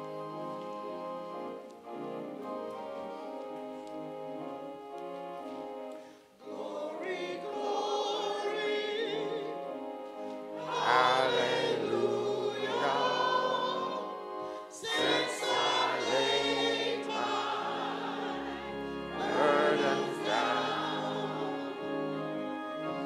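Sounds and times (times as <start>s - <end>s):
choir and congregation singing hymn: 0.0s - 23.0s.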